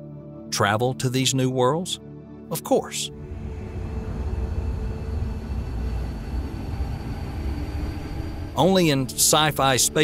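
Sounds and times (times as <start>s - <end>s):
spaceship low rumble: 3.1s - 10.0s.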